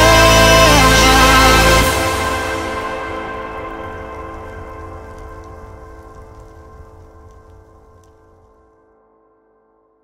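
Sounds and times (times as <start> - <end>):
low bass drone: 0.0 - 8.5
faint crackle: 2.0 - 9.6.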